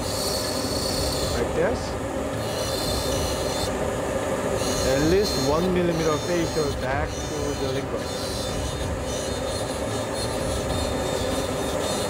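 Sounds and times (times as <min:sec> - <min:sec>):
dental handpiece grinding: 0:00.0 - 0:03.8, 0:04.5 - 0:12.0
vacuum running: 0:00.0 - 0:12.0.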